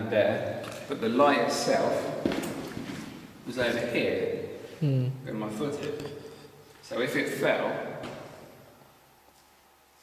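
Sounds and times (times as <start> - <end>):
man speaking: 3.5 - 4.6, 5.2 - 6.1.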